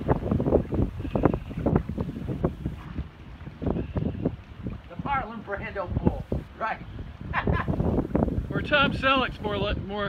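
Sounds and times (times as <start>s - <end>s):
sea surf against rocks: 0.0s - 10.0s
wind buffeting microphone: 0.0s - 10.0s.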